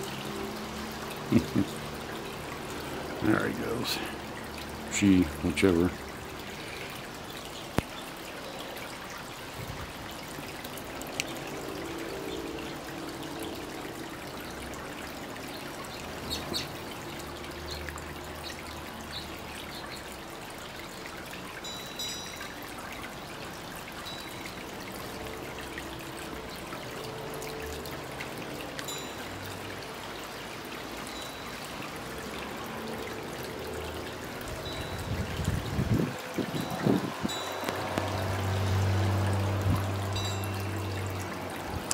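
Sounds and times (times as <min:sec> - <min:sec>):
fountain water trickling: 0:00.0 - 0:41.9.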